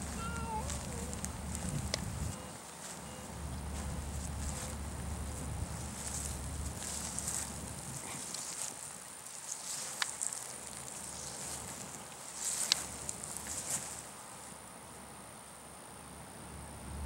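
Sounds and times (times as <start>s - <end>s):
light rustling: 0.0s - 14.6s.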